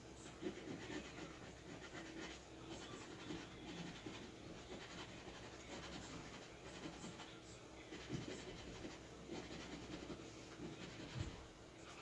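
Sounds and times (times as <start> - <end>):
lottery ticket being scratched: 0.2 - 11.2.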